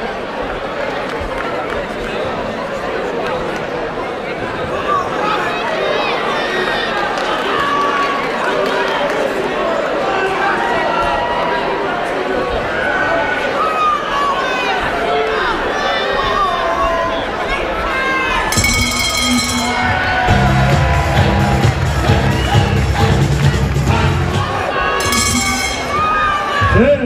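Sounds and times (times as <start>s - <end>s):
crowd shouting and cheering: 0.0s - 27.0s
loud music with heavy bass: 20.3s - 24.6s.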